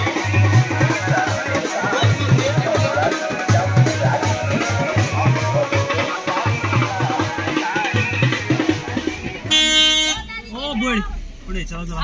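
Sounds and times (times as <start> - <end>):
people talking: 0.8 - 6.8, 10.1 - 12.0
vehicle horn honk: 9.4 - 10.5.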